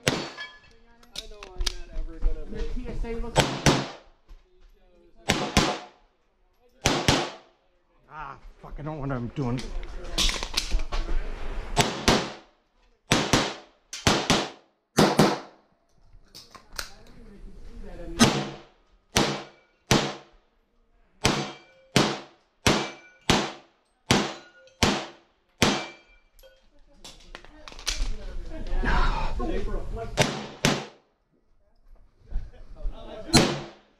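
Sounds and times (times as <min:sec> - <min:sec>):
pistol shots with echo: 0:00.0 - 0:00.4, 0:05.2 - 0:06.0, 0:06.8 - 0:07.5, 0:11.8 - 0:12.4, 0:13.1 - 0:15.6, 0:18.2 - 0:20.3, 0:21.2 - 0:26.1, 0:30.2 - 0:31.0, 0:33.3 - 0:33.8.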